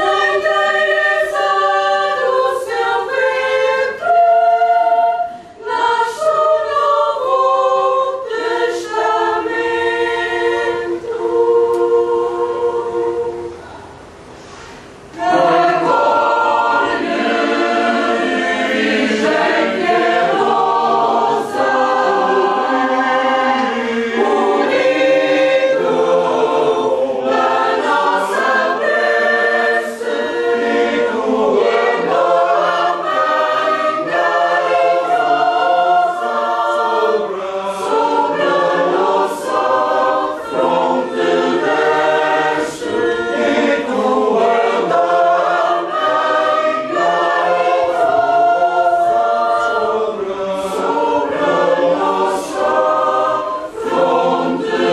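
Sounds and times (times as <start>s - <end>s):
choir singing: 0.0s - 14.0s, 15.0s - 54.9s.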